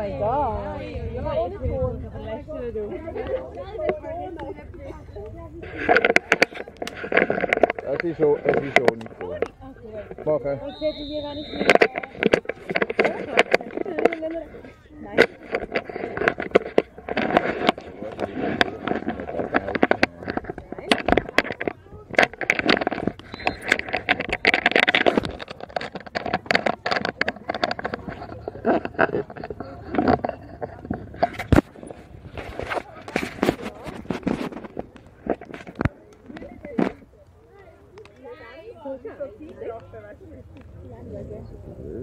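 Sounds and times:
people chattering: 0:00.0 - 0:42.0
sharp clicks and knocks: 0:15.1 - 0:37.0.

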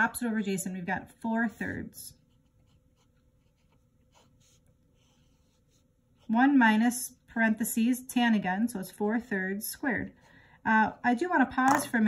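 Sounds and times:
pen scratching on paper: 0:01.5 - 0:06.3.

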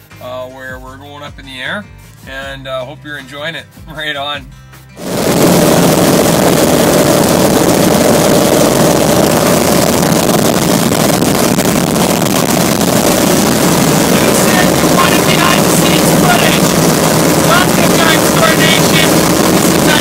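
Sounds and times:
aircraft engine and propeller: 0:05.0 - 0:20.0.

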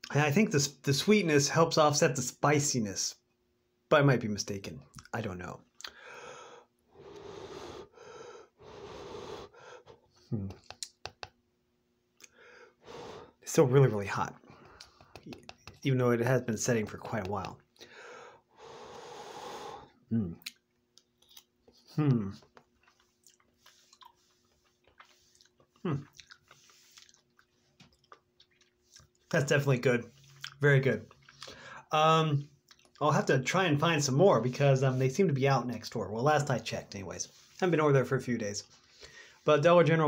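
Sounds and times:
person humming: 0:10.3 - 0:10.7, 0:22.0 - 0:22.4
person chewing: 0:20.4 - 0:29.3, 0:30.1 - 0:31.7, 0:32.6 - 0:33.0.

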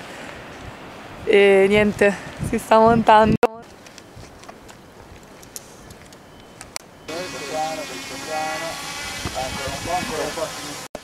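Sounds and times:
drone propellers whining: 0:07.0 - 0:11.0.

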